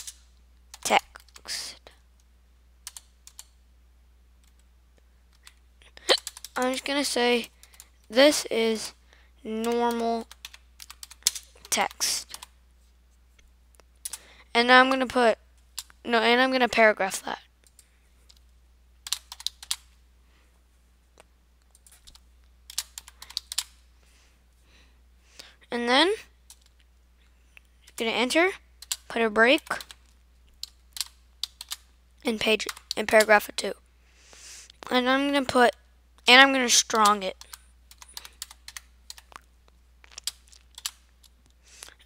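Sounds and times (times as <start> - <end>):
keyboard typing: 0.0 - 1.5, 2.8 - 3.6, 5.4 - 8.2, 9.6 - 12.5, 19.0 - 19.9, 21.6 - 23.8, 28.8 - 31.8, 32.4 - 33.3, 36.9 - 41.3
faint low hum: 0.0 - 42.0.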